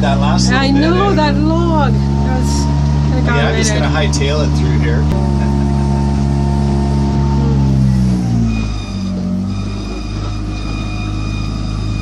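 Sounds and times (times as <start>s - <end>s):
outboard motor running: 0.0s - 12.0s.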